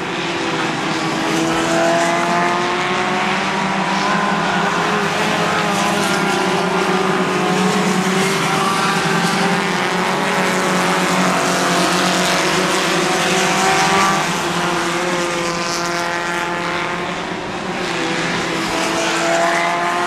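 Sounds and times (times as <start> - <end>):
race car engines: 0.0 - 20.0.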